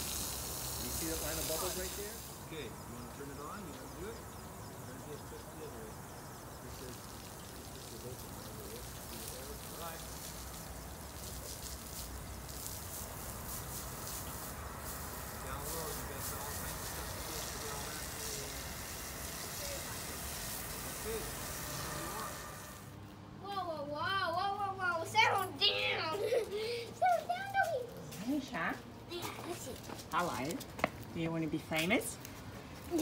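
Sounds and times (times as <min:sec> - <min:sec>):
hose water spraying on concrete: 0:00.0 - 0:23.0, 0:25.0 - 0:33.0
distant voices: 0:00.0 - 0:33.0
people talking: 0:00.8 - 0:06.0, 0:06.6 - 0:10.2, 0:15.3 - 0:22.6, 0:23.5 - 0:30.6.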